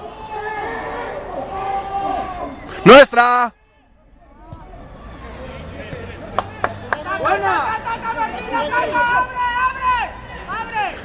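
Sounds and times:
faint shouting voices: 0:00.0 - 0:11.0.

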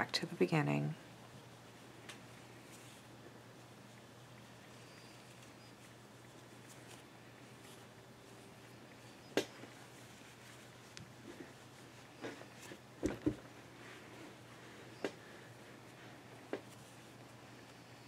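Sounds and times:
soft knocks and rustles of yarn: 0:01.2 - 0:18.0.

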